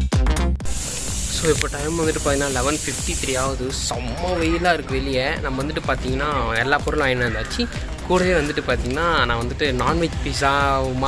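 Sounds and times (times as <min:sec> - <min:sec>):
steady hiss: 0:00.6 - 0:03.9
electronic dance music: 0:00.6 - 0:11.0
man's voice: 0:01.3 - 0:11.0.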